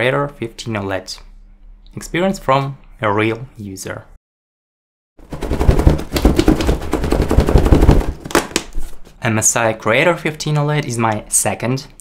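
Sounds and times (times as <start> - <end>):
rapid sharp cracks: 5.2 - 8.8.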